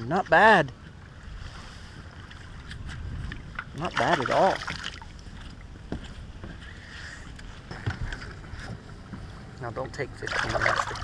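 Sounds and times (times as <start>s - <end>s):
wind and water wash: 0.0s - 11.0s.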